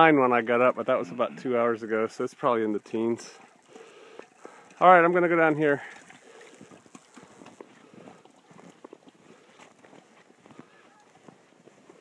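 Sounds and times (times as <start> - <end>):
footsteps crunching through snow: 6.6 - 12.0.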